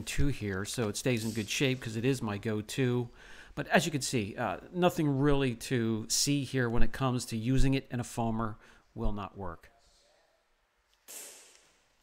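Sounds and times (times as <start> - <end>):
short soft breath: 3.2 - 3.6.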